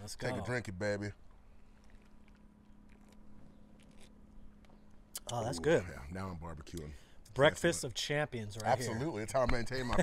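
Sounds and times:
low steady hum: 0:00.0 - 0:10.0
swallowing and sipping: 0:01.6 - 0:04.2.

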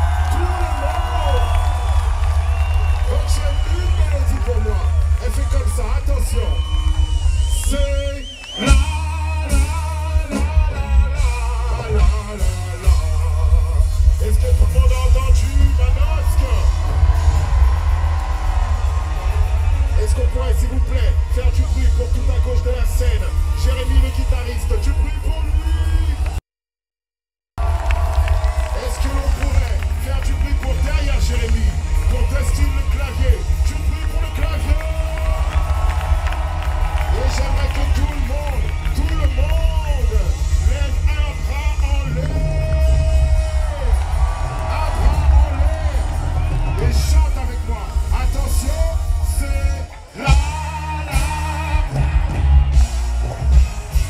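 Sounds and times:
audience cheering: 0:00.0 - 0:26.4, 0:27.6 - 0:54.0
live band music with heavy bass: 0:00.0 - 0:26.4, 0:27.6 - 0:54.0.

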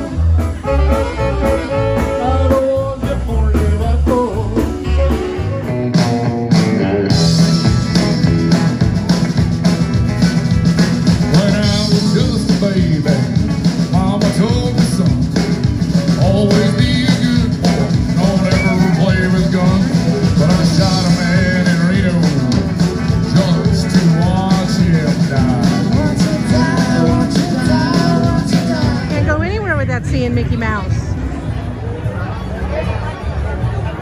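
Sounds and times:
country band playing: 0:00.0 - 0:34.0
person singing: 0:01.7 - 0:07.1, 0:11.2 - 0:29.2.

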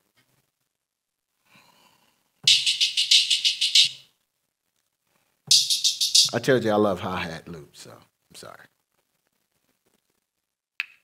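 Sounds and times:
rapid hi-hat hits: 0:02.4 - 0:04.1, 0:05.5 - 0:06.5.

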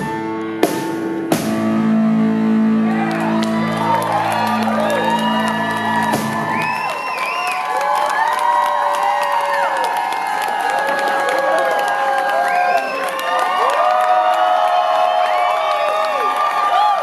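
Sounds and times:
audience cheering and whooping: 0:02.5 - 0:17.0.

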